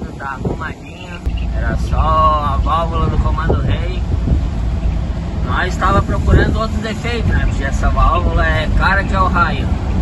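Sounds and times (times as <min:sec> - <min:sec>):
road noise: 0:00.0 - 0:10.0
truck engine rumble: 0:00.0 - 0:10.0.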